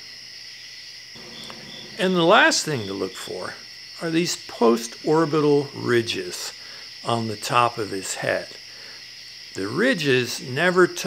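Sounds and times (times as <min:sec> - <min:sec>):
crickets trilling: 0:00.0 - 0:11.0
faint low hum: 0:01.2 - 0:04.5.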